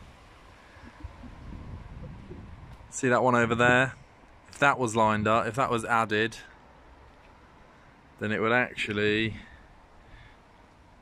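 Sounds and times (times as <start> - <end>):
wind rumble on microphone: 0.0 - 4.2.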